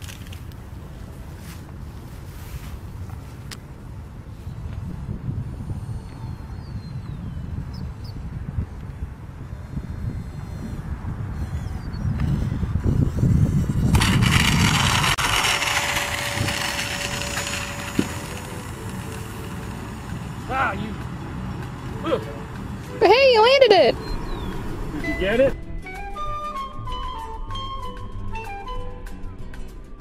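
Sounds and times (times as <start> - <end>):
wind rumble on microphone: 0.0 - 15.4
electric ducted fans whining: 0.0 - 25.6.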